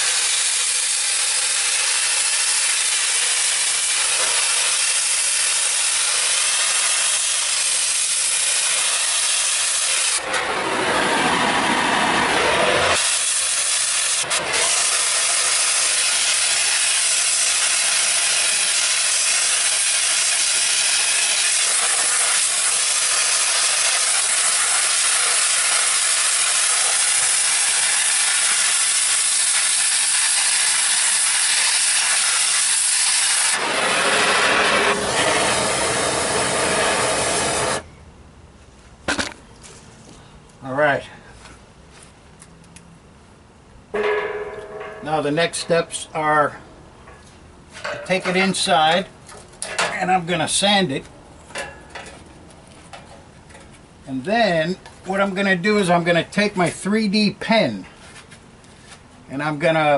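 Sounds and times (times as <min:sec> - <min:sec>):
gas torch flame hissing: 0:00.0 - 0:37.8.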